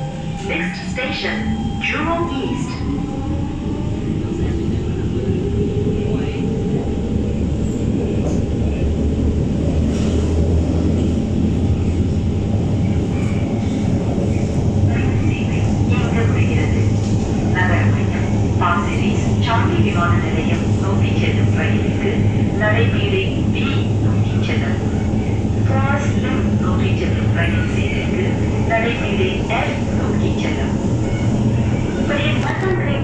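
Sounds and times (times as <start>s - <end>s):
train wheels rumbling on rail: 0.0s - 33.0s.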